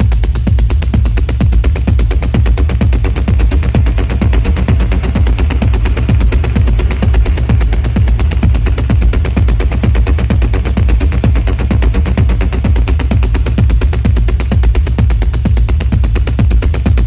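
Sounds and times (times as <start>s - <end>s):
dark techno music: 0.0s - 17.0s.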